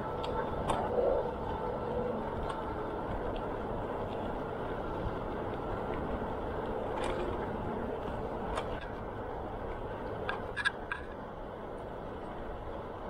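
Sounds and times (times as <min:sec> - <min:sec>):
bicycle tyres on asphalt: 0:00.0 - 0:13.0.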